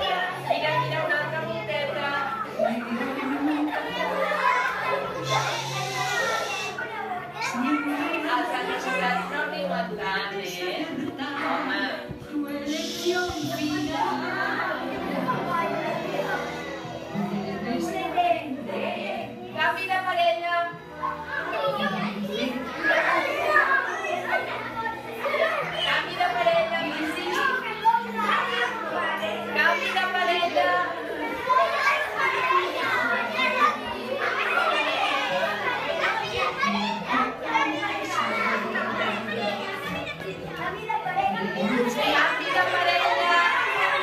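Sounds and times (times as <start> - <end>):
children chattering and shouting: 0.0 - 44.0
music playing: 0.0 - 44.0.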